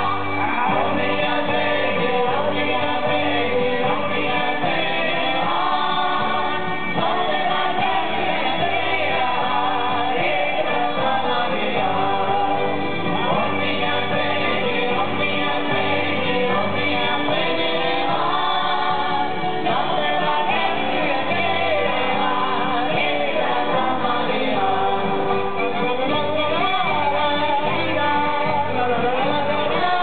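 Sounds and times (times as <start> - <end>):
group singing folk song: 0.0 - 30.0.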